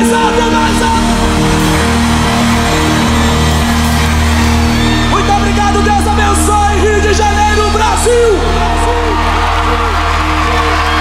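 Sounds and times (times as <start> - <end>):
live gospel band music: 0.0 - 11.0.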